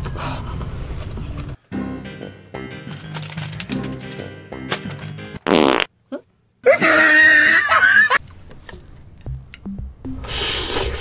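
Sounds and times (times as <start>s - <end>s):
background music: 1.6s - 5.5s, 9.2s - 11.0s.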